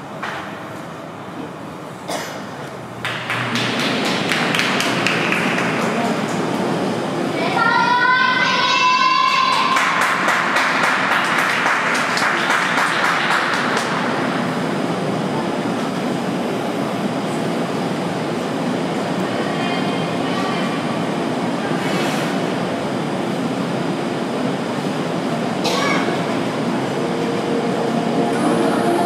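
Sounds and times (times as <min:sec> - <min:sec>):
low rumble of hall: 0:00.0 - 0:29.0
scattered applause: 0:03.0 - 0:06.7, 0:08.8 - 0:14.2.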